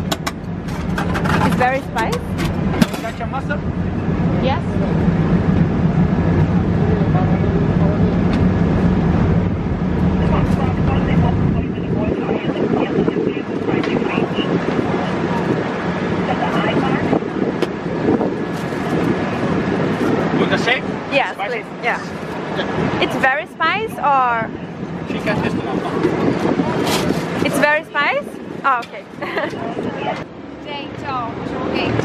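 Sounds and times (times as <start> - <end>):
low traffic engine rumble: 0.0 - 32.0
traffic din: 0.0 - 32.0
indistinct voices of passers-by: 0.6 - 32.0.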